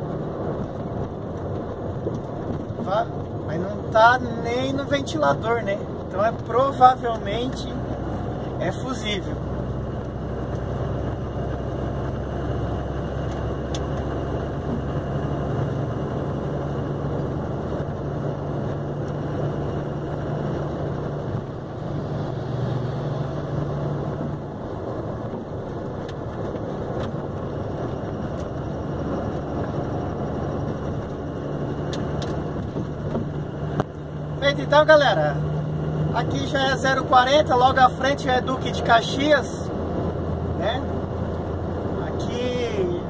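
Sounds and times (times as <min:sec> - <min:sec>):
engine drone: 0:00.0 - 0:43.0
road noise: 0:00.0 - 0:43.0.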